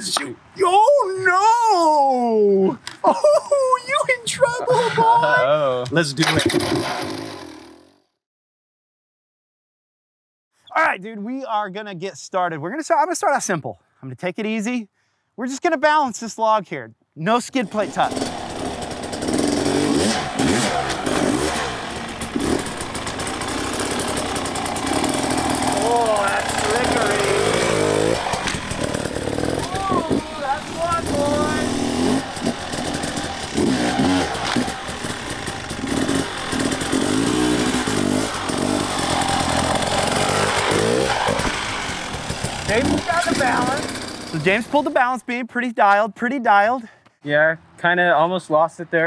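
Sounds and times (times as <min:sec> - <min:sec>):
dirt bike engine revving: 0:06.3 - 0:08.0, 0:17.6 - 0:45.0.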